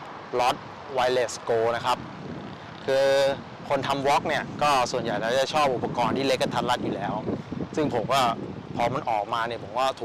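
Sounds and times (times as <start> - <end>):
road traffic hum: 0.0 - 10.0
man speaking: 0.3 - 2.0, 2.8 - 10.0.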